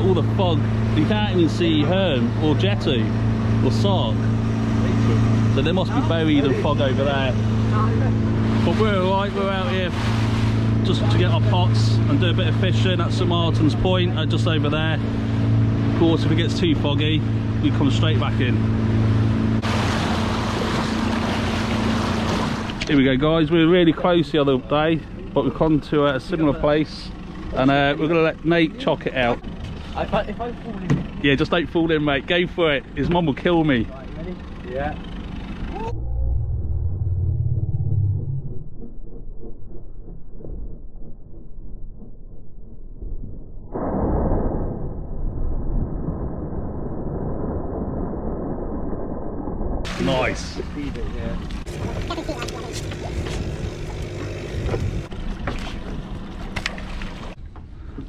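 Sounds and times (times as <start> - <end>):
rush of wind and water: 0.0 - 22.9, 49.6 - 57.4
motorboat engine running: 0.0 - 43.7, 49.8 - 58.0
low rumble: 0.0 - 58.0
muffled splash into water: 49.8 - 52.0.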